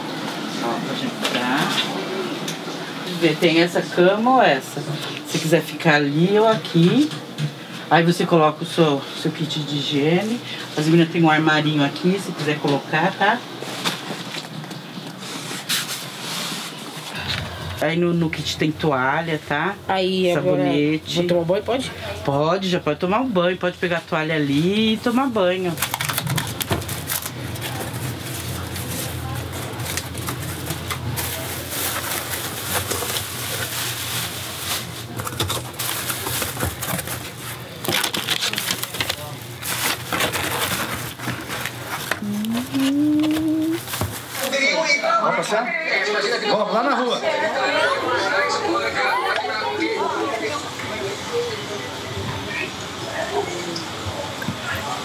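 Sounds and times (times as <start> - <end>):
plastic bag rustling: 24.7 - 44.7
cardboard box scraping: 28.0 - 44.5.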